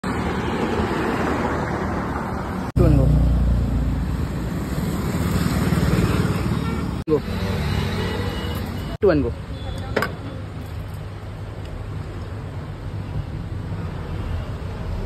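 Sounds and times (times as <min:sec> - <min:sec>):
road traffic rumble: 0:00.0 - 0:15.0.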